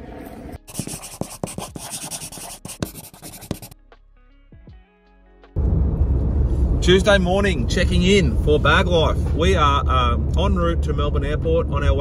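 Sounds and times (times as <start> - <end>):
pen scribbling on paper: 0.7 - 3.8.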